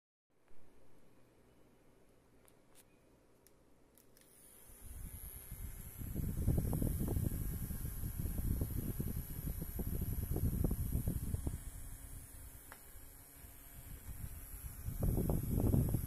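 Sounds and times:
fan motor whine: 4.2 - 16.0
air blowing on microphone: 4.8 - 12.5, 13.8 - 16.0.

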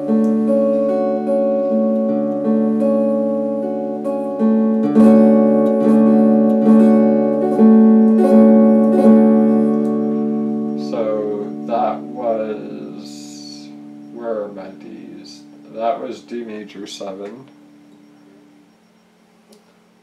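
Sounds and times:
electric guitar chords strummed: 0.0 - 18.7.

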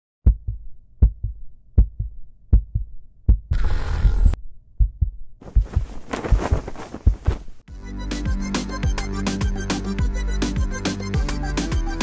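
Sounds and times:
deep heartbeat-like thumps: 0.2 - 3.5, 4.8 - 7.6.

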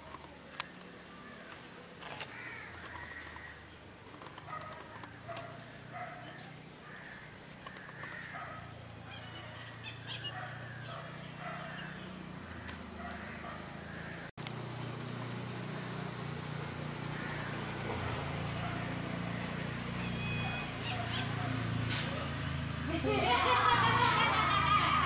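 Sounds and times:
birds calling: 0.0 - 25.0
distant voices: 0.0 - 25.0
motor scooter passing: 0.0 - 25.0.

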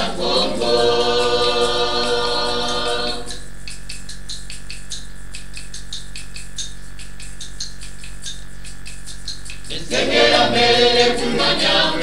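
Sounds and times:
choir singing: 0.0 - 3.5, 9.7 - 12.0
electrical hum: 0.0 - 12.0
light rhythmic percussion: 0.0 - 12.0.

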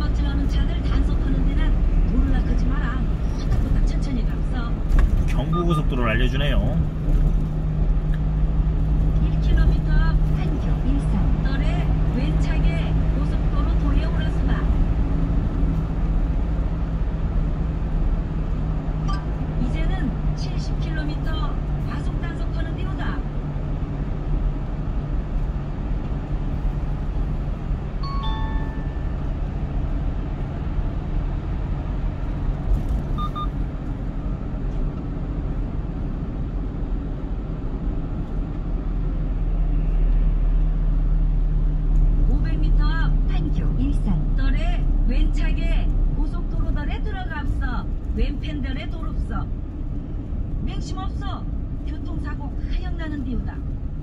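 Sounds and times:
car engine and tyre drone: 0.0 - 54.0
short electronic chime: 28.0 - 29.1
brief beep: 28.0 - 29.2, 33.2 - 33.6.

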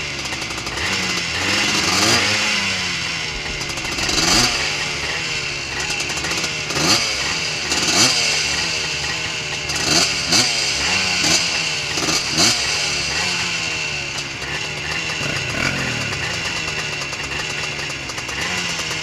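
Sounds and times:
engine throttle blips: 0.0 - 19.0
two-stroke engines idling: 0.0 - 19.0.

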